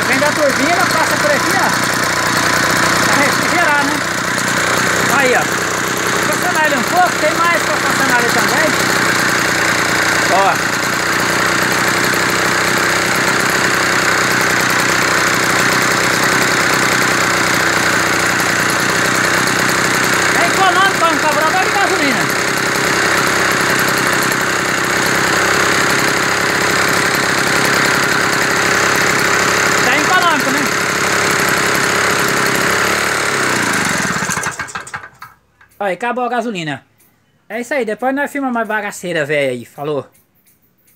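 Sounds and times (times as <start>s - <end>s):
small engine running: 0.0s - 35.8s.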